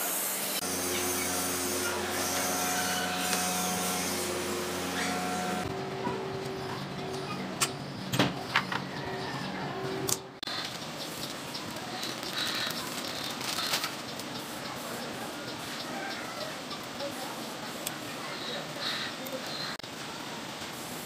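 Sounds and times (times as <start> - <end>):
low machine hum: 0.6 - 10.4.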